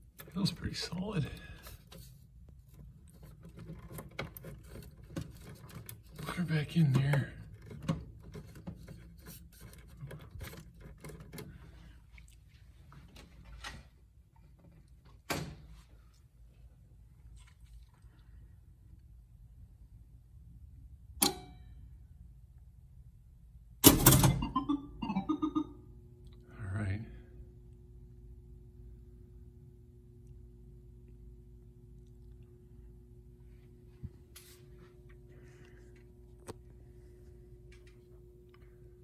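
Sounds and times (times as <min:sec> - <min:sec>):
short steady tones: 0:24.4 - 0:25.9.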